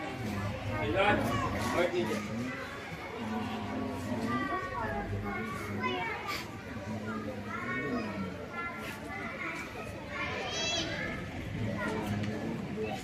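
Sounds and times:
adult voices: 0.0s - 13.0s
children chattering and calling out: 0.0s - 13.0s.

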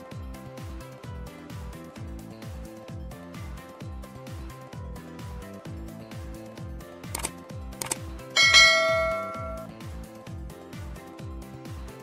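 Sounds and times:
background music: 0.0s - 12.0s
short clicks: 7.1s - 8.0s
bell ding: 8.4s - 9.7s.

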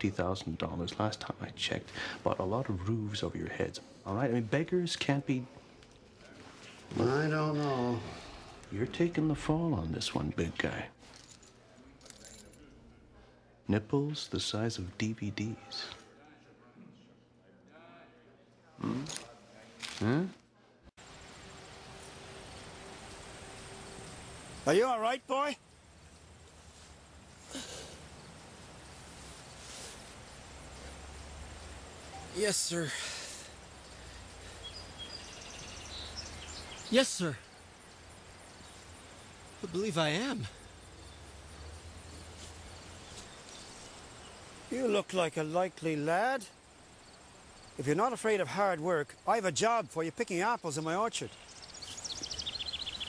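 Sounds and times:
key jingling: 11.0s - 12.8s.

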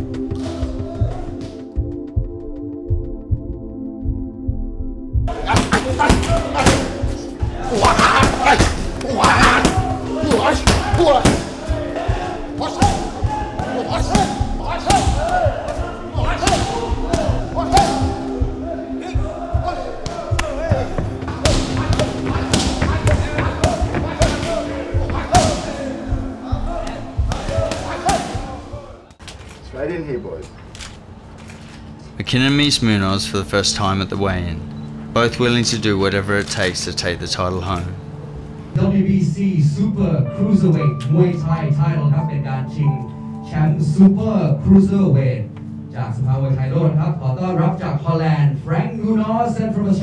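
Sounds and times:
music with vocals: 0.0s - 29.2s
person shouting: 7.6s - 18.2s.

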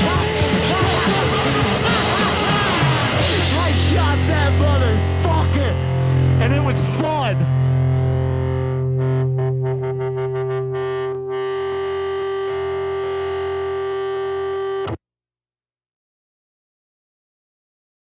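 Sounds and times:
distorted electric guitar chord ringing: 0.0s - 15.0s
wavering pitched guitar squeals: 0.1s - 15.0s.

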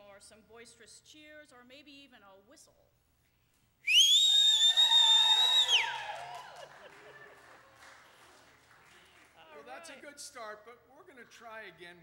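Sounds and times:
shrill human whistle: 3.8s - 6.3s
voices cheering: 4.0s - 8.0s.

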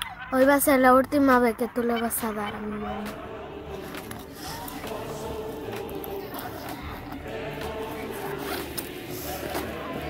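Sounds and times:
backpack zipper opening: 5.7s - 10.0s.

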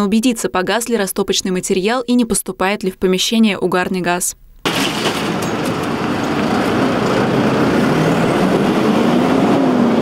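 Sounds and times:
fire truck engine droning: 5.0s - 10.0s.

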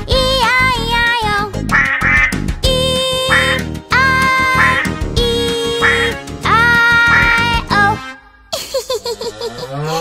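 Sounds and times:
children's song music: 0.0s - 8.5s
cartoon duck quacks: 1.7s - 2.4s, 3.3s - 3.6s, 4.5s - 4.9s, 5.8s - 6.1s.

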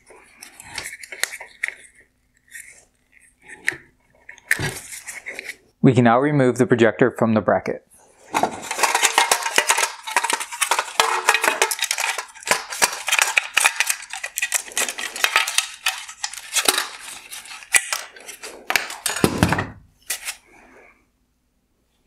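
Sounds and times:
plastic parts clicking and rattling: 8.3s - 20.4s.

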